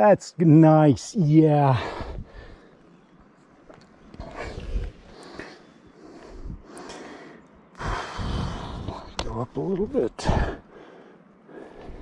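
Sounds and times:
person breathing heavily: 1.7 - 2.9, 4.2 - 9.2, 10.2 - 12.0.

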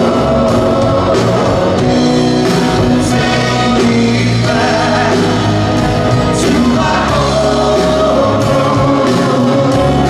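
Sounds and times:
drum kit: 0.0 - 10.0
electric bass: 0.0 - 10.0
electric guitar: 0.0 - 10.0
person singing: 0.0 - 10.0.

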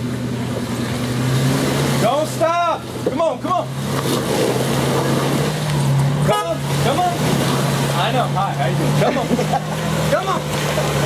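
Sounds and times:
car engine running at low revs: 0.0 - 11.0.

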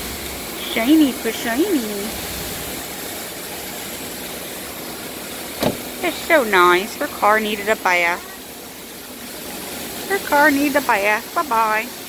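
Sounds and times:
car engine idling: 0.0 - 11.8.

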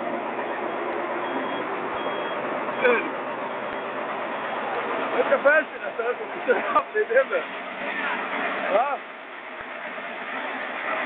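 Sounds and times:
reversing alarm beeping: 0.4 - 4.0.

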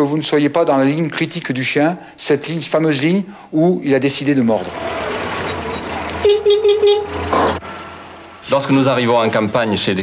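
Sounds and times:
vehicle engine running: 4.6 - 8.6
van horn tooting: 4.8 - 8.5.

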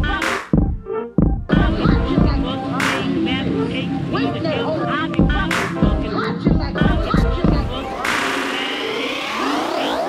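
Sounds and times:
synthesizer sweep: 6.8 - 10.0.

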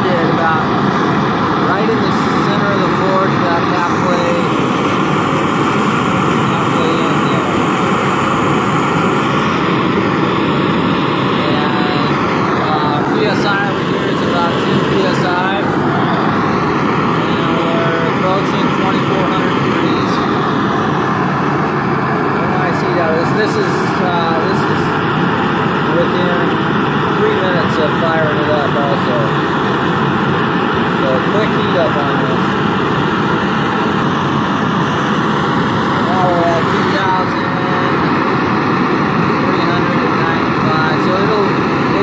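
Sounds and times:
forge gas burner roaring: 0.0 - 42.0.

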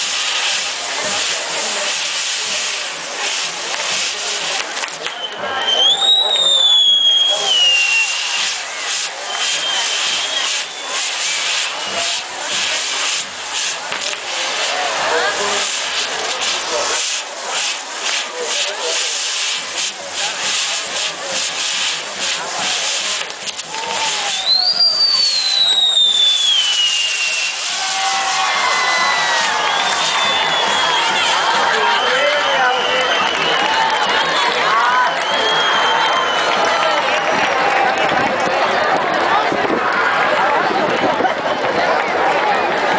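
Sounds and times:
crowd voices: 0.0 - 42.9
fireworks crackling and hissing: 0.0 - 42.9
firework whistle falling in pitch: 5.0 - 13.7, 22.9 - 37.4.

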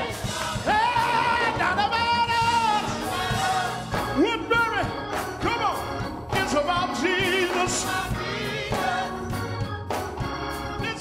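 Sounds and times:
low musical accompaniment: 0.0 - 11.0.

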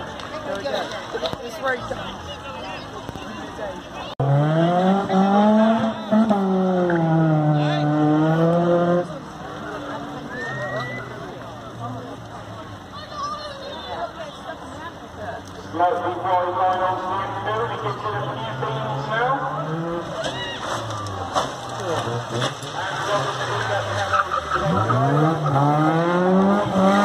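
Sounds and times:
car engine revving: 4.1 - 10.2, 16.0 - 27.0.

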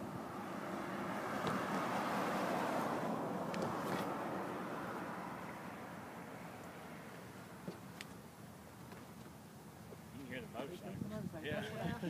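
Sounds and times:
car passing on highway: 0.0 - 8.4.

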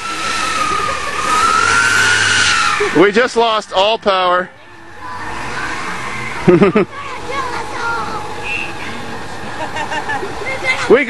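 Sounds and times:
bus engine running: 0.0 - 11.0
loud steady high whistle: 8.4 - 9.0.

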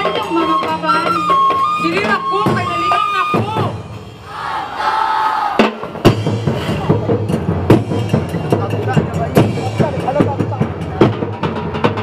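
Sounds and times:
group shouting together: 4.2 - 5.8
drums hitting sharply: 5.4 - 12.0.

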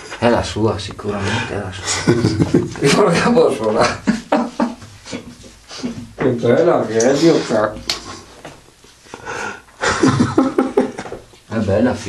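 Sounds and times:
person breathing: 9.0 - 10.0.

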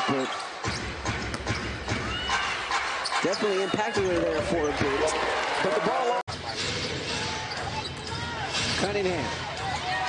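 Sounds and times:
sneakers squeaking: 0.0 - 5.1, 6.3 - 8.8
crowd noise: 0.0 - 10.0.

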